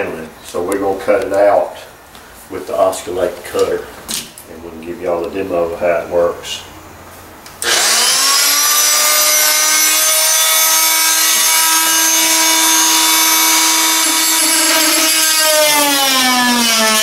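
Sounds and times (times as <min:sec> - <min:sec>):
oscillating multi-tool whining: 0:07.6 - 0:17.0.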